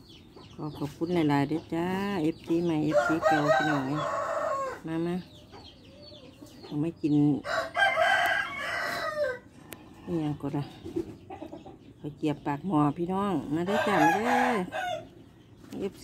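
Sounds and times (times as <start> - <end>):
rooster crowing: 2.9 - 4.8, 7.5 - 9.5, 13.7 - 15.1.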